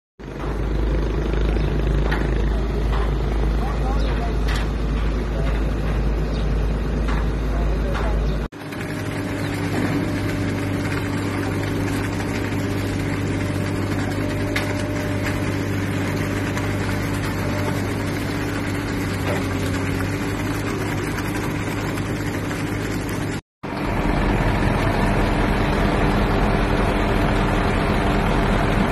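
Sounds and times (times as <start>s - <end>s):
heavy machine engine running: 0.2s - 28.9s.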